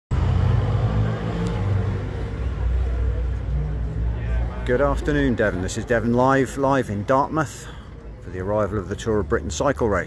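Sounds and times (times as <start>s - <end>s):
low street rumble: 0.1s - 10.0s
faint crowd voices: 0.4s - 10.0s.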